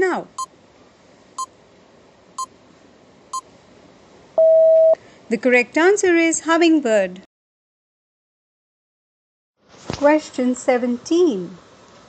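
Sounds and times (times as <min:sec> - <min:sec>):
short high beeps: 0:04.4 - 0:05.0.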